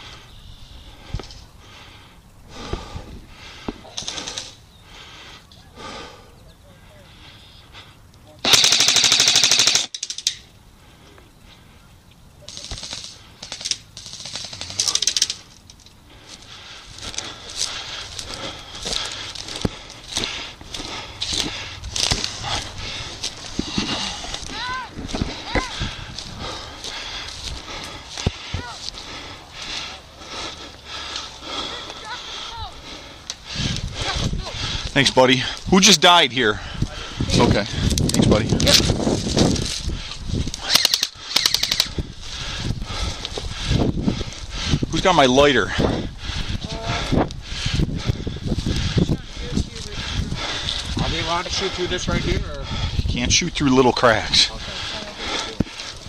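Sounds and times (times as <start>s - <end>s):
airsoft rifle firing bursts: 8.4s - 10.0s, 12.5s - 15.3s, 40.7s - 41.9s
rustling in grass: 10.8s - 32.8s, 36.9s - 44.5s.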